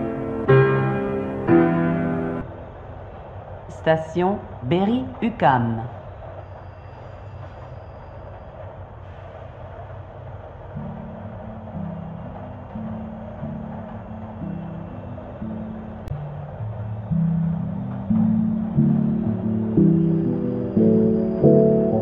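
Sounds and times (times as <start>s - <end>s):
metro train rumble and hiss: 0.0s - 22.0s
low held music notes: 10.6s - 22.0s.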